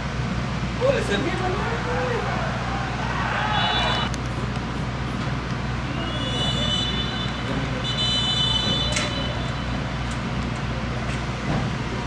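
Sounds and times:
crowd and player voices: 0:00.8 - 0:12.0
high whistle-like tone: 0:05.9 - 0:07.3.

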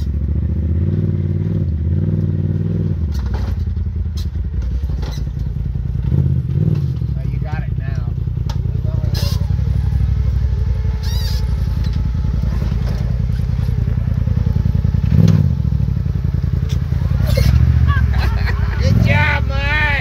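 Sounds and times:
engine running at low revs: 0:00.0 - 0:20.0.

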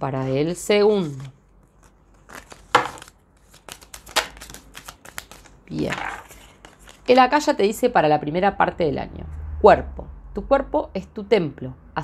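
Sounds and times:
cards being shuffled: 0:01.0 - 0:07.2.

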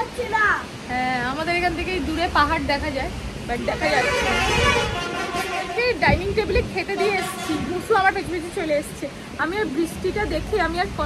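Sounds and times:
vehicle horn honk: 0:03.9 - 0:05.8, 0:07.0 - 0:07.7.

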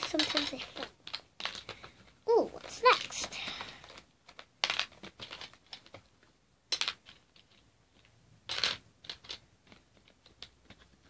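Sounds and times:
plastic art supplies clicking: 0:00.0 - 0:11.0.

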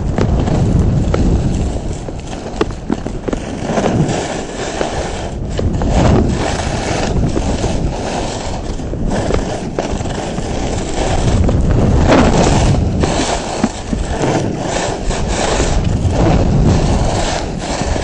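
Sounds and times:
skis scraping on snow: 0:00.0 - 0:18.0
wind rumble on microphone: 0:00.0 - 0:18.0.

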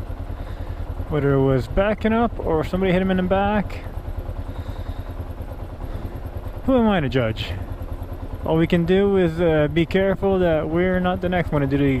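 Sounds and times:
motorcycle engine running slowly: 0:00.0 - 0:12.0.

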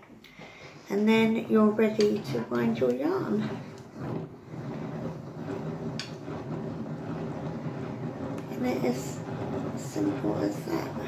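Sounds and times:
hand-cranked yarn winder turning: 0:00.0 - 0:11.0.

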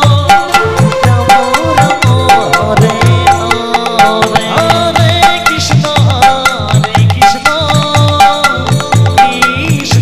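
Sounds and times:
keyboard melody: 0:00.0 - 0:06.0
drum playing steady rhythm: 0:00.0 - 0:10.0.

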